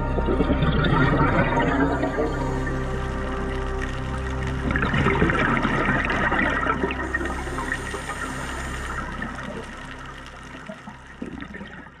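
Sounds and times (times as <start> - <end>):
underwater scuba exhaust bubbles: 0.0 - 12.0.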